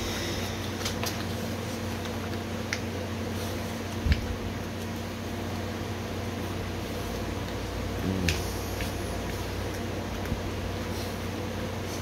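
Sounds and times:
fan-like appliance hum: 0.0 - 12.0.

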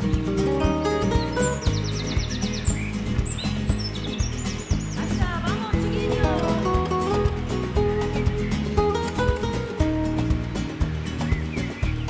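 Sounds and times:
background music with steady beat: 0.0 - 12.0
birds chirping: 0.0 - 12.0.

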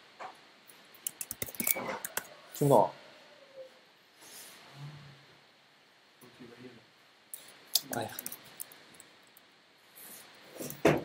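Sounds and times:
computer keys clicking: 1.0 - 2.2, 7.8 - 8.8.

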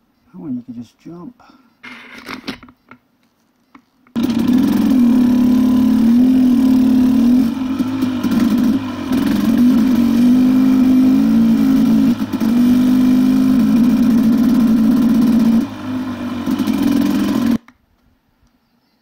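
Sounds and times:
dirt bike engine revving: 4.2 - 17.6.

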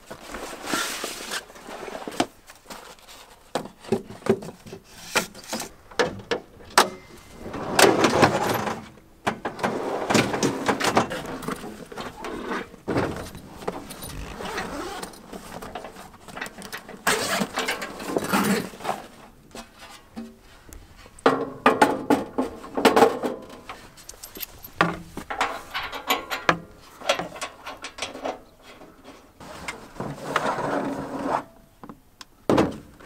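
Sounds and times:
nylon bag rustling: 13.1 - 15.7.

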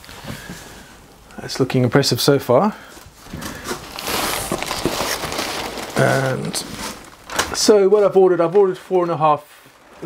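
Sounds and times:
plastic and paper rustling: 2.9 - 10.0.

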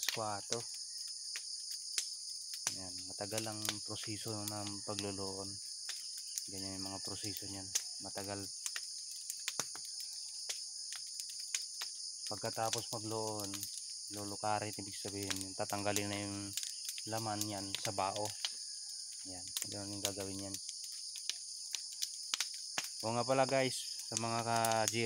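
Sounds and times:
crickets chirping: 0.0 - 25.0
fire crackling and popping: 0.0 - 25.0
insects chorus: 0.0 - 25.0.

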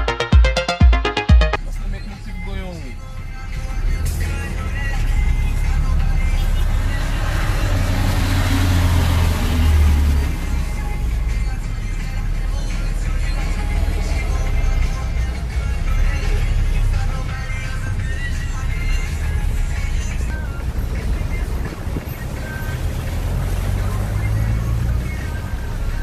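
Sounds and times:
road traffic engine rumble: 1.6 - 26.0
vehicles passing with tyre noise: 1.6 - 26.0.

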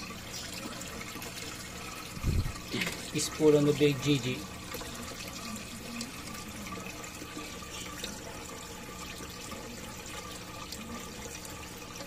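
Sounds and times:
running water trickling: 0.0 - 12.0.

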